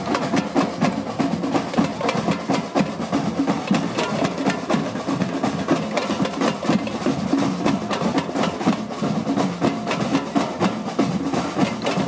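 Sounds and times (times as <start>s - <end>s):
drum band playing: 0.0s - 12.0s.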